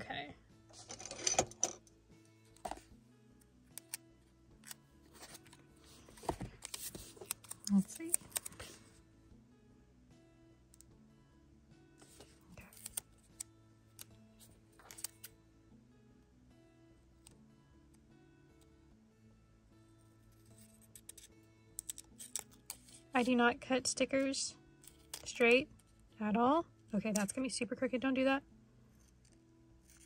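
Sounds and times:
quiet background music: 0.0 - 30.0
scissors snipping paper: 6.2 - 8.8, 12.6 - 13.4, 14.8 - 15.3, 20.6 - 23.0.

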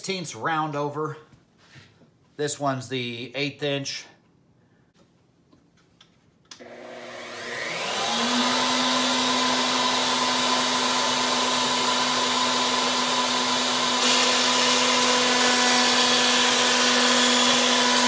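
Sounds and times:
router bit cutting wood: 6.6 - 18.0
router high whine: 6.6 - 18.0.

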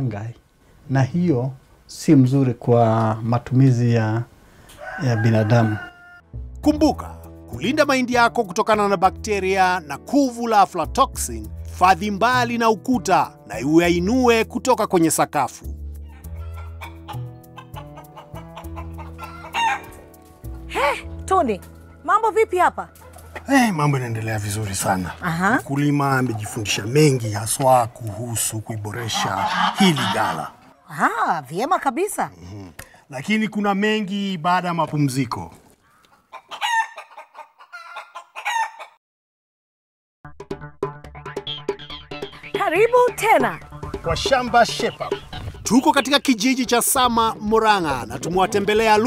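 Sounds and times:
chickens calling: 4.6 - 6.2, 16.0 - 21.0, 21.8 - 30.8, 35.7 - 39.0, 41.4 - 49.0
rooster crowing and clucking: 4.6 - 6.3, 16.0 - 20.1, 29.1 - 30.7, 36.1 - 39.0
background music: 5.0 - 34.5, 40.2 - 49.0.

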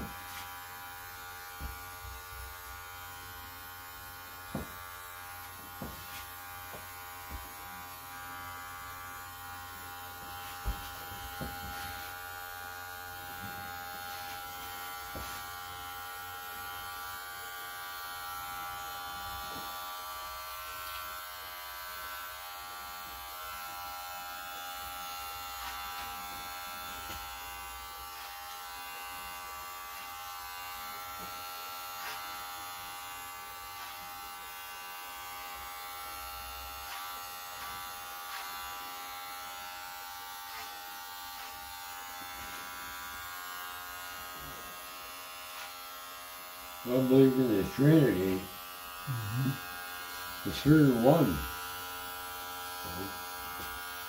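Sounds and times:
electric hair clippers running: 0.0 - 54.0.

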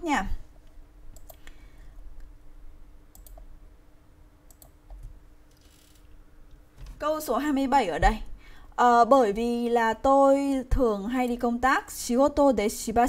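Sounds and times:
faint steady hum: 0.0 - 13.0
computer mouse clicks: 1.1 - 1.6, 3.1 - 3.5, 4.5 - 6.0.

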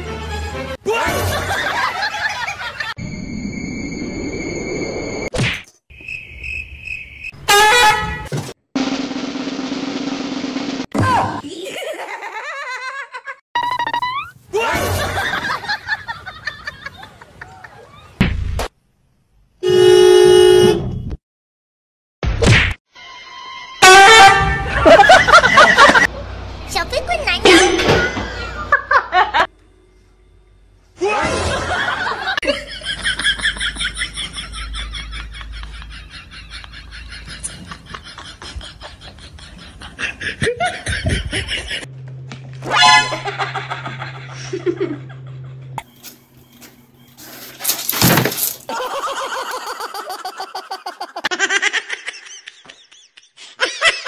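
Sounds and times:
car horn blast: 7.5 - 8.3, 19.6 - 21.0, 23.8 - 24.9, 42.7 - 43.5
clattering crash: 47.3 - 48.7.

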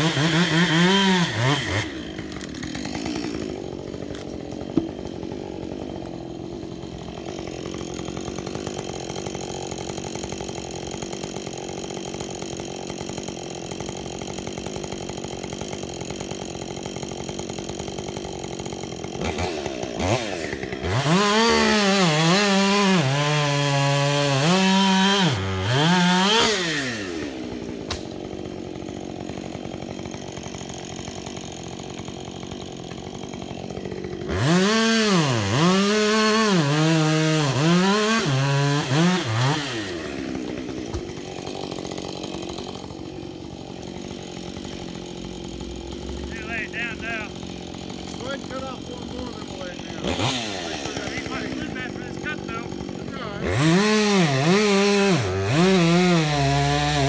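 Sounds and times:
chainsaw idling and revving: 0.0 - 57.0.

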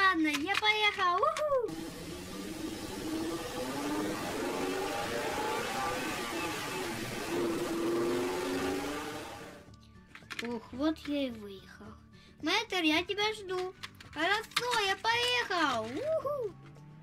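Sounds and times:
light background music: 0.0 - 17.0.

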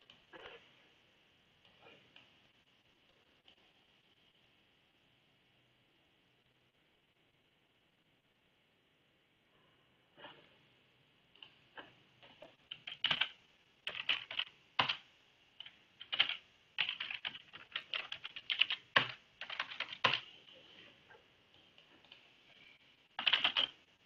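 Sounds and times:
computer keyboard typing: 12.2 - 20.4, 23.2 - 23.8.

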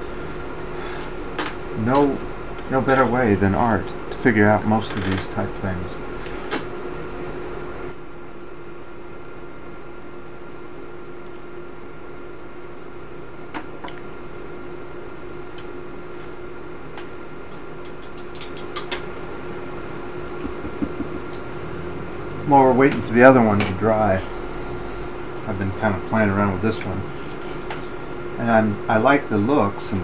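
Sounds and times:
high whine: 0.0 - 13.5, 18.8 - 30.0
steady machine hum: 0.0 - 30.0
small clicks and knocks: 17.8 - 19.1.

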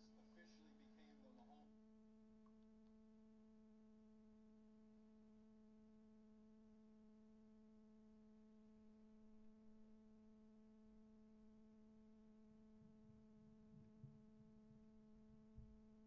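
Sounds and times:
faint steady low hum: 0.0 - 16.0.

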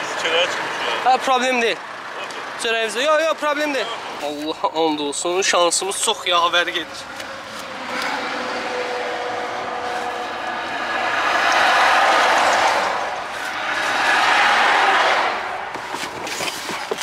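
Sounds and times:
road traffic passing: 0.0 - 17.0.

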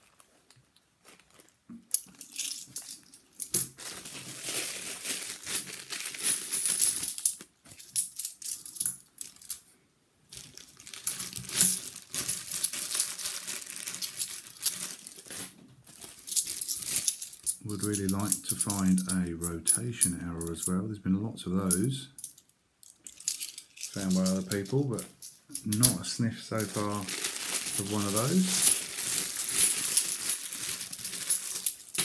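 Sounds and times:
plastic bags crinkling: 0.0 - 8.0, 10.3 - 19.5, 23.1 - 32.0
coins clinking: 16.2 - 20.7, 21.7 - 32.0.

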